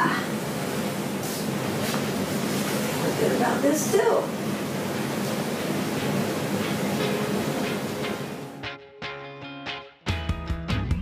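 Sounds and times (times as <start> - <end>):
room noise hiss: 0.0 - 8.6
plucked guitar music: 7.0 - 11.0.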